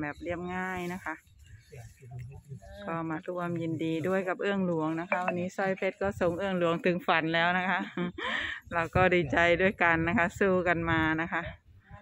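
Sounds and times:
person speaking: 5.1s - 5.5s.

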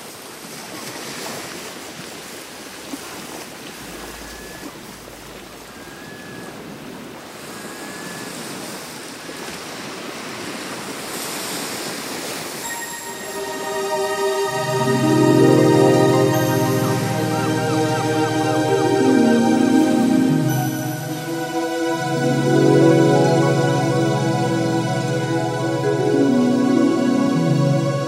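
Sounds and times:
rushing water like surf: 0.0s - 28.0s
faint short high notes: 12.6s - 18.2s
soft new age music: 12.6s - 28.0s.

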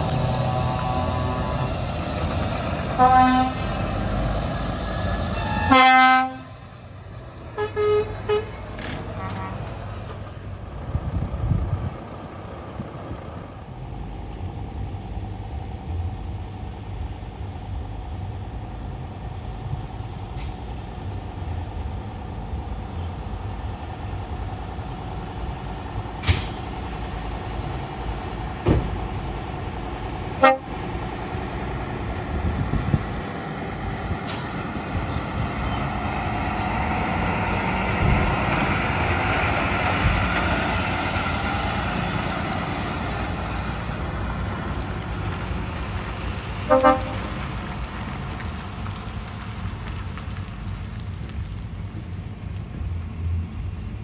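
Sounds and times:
diesel lorry driving past: 0.0s - 54.0s
truck horn blasts: 2.9s - 3.7s, 5.3s - 6.6s, 7.6s - 8.6s, 9.2s - 9.7s, 30.4s - 30.8s, 46.7s - 47.4s.

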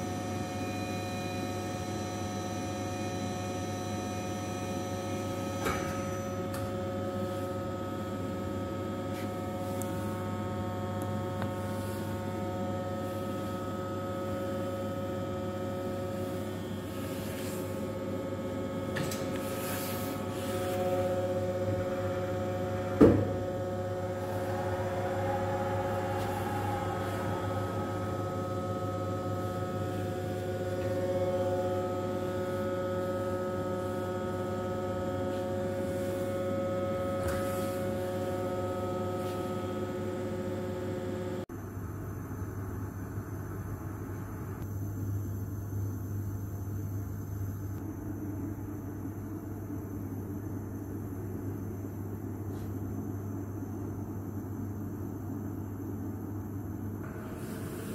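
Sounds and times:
grinding machine electrical hum: 0.0s - 57.9s
machine whining tones: 20.3s - 41.2s.

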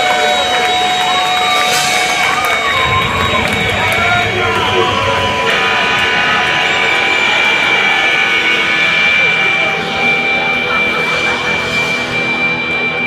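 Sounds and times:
guitar amplifiers ringing high tone: 0.0s - 13.0s
voices talking: 0.0s - 13.0s.

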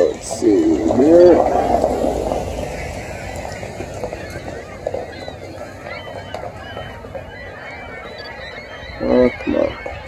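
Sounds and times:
low wind rumble: 0.0s - 10.0s
water birds calling: 0.0s - 10.0s.

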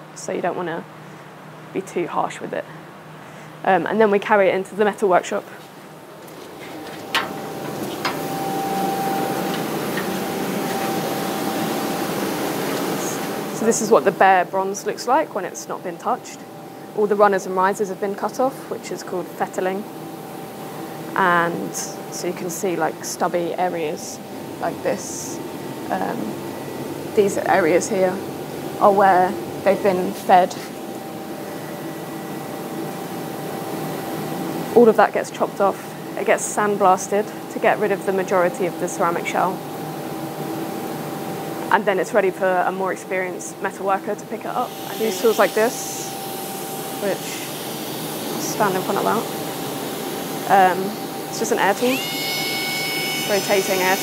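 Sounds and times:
faint constant tones: 0.0s - 54.0s
workshop machinery hum and hiss: 0.0s - 54.0s.

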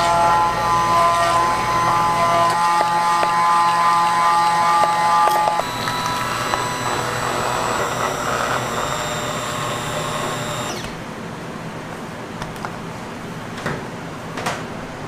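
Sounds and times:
blade churning chocolate mixture: 0.0s - 11.0s
immersion blender motor whine: 0.0s - 11.0s.

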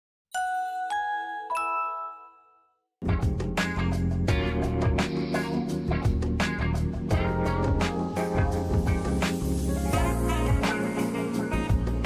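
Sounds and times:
bell-like chime notes: 0.4s - 2.9s.

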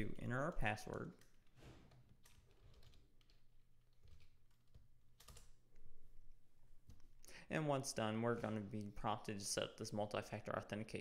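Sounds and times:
keystrokes on computer keyboard: 0.6s - 5.8s.

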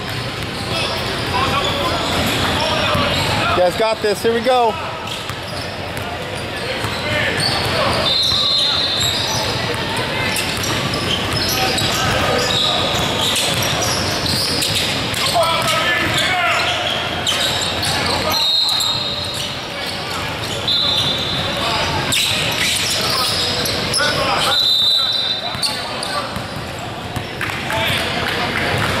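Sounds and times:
sneaker squeaks on hardwood: 0.1s - 3.5s, 5.0s - 27.4s.

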